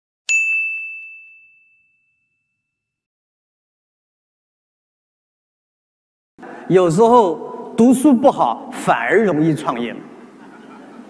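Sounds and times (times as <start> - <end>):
bright bell ding: 0.3 - 2.8.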